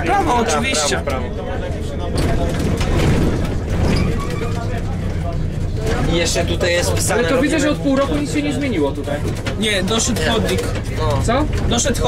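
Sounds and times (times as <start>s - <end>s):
bus engine running: 0.0s - 12.0s
road and body noise: 0.0s - 12.0s.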